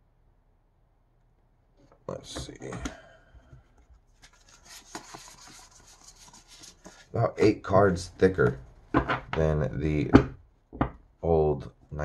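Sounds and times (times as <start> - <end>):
plastic cards sliding and ticking: 4.1 - 7.1.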